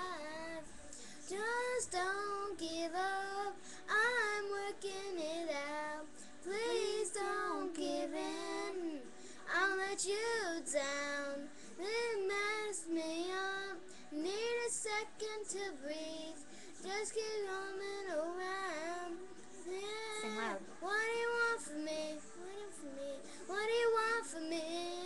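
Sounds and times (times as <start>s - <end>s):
girl singing a pop song: 0.0s - 25.0s.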